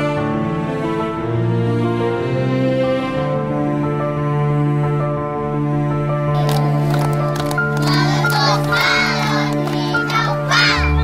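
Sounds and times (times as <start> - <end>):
background music: 0.0 - 11.0
hand claps: 6.4 - 10.9.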